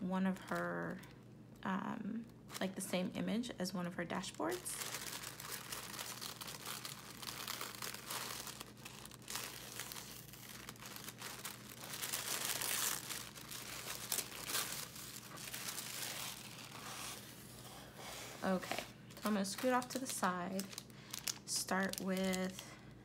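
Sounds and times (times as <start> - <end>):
tissue paper crinkling: 4.2 - 22.6.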